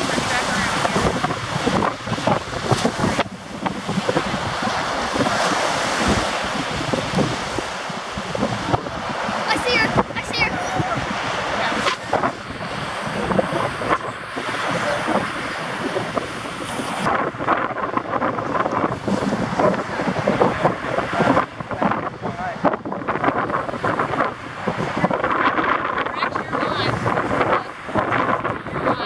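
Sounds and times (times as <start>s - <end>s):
ocean surf: 0.0s - 29.0s
wind buffeting microphone: 0.0s - 29.0s.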